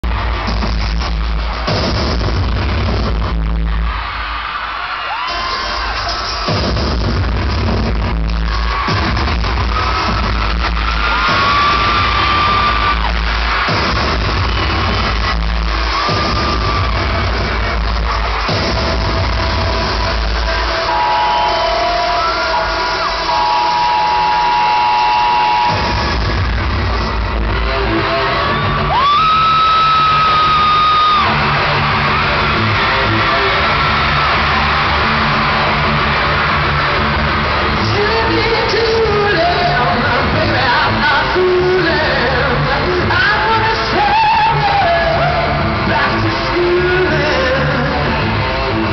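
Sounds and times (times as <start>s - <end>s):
electronic music over pa: 0.0s - 4.4s, 5.2s - 48.9s
crowd screaming: 0.0s - 48.9s.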